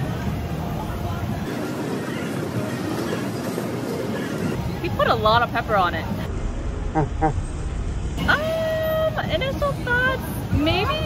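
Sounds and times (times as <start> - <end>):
busy street market noise: 0.0 - 11.0.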